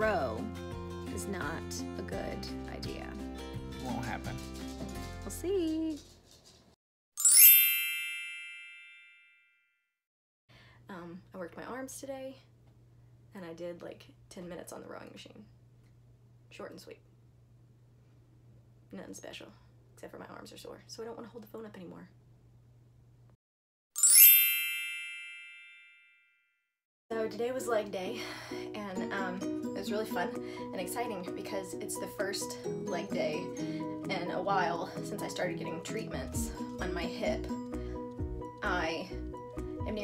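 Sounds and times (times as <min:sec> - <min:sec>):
bright ringing chime: 0:07.2 - 0:09.5, 0:24.0 - 0:26.3.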